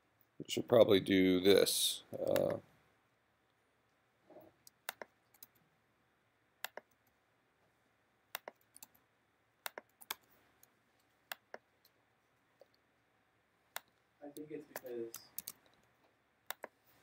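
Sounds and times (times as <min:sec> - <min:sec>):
computer keyboard keystrokes: 0:04.7 - 0:05.6, 0:08.3 - 0:09.0, 0:09.6 - 0:10.3, 0:14.7 - 0:15.8.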